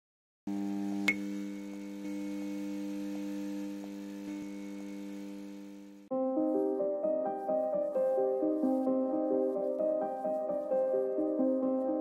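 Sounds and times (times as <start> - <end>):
electrical hum: 0.5 - 6.1.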